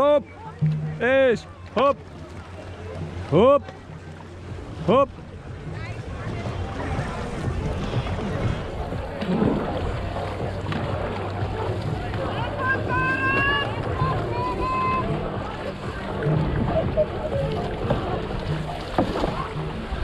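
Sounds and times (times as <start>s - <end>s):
paddles splashing: 0.0s - 20.0s
water rushing past hull: 0.0s - 20.0s
wind on microphone: 4.0s - 20.0s.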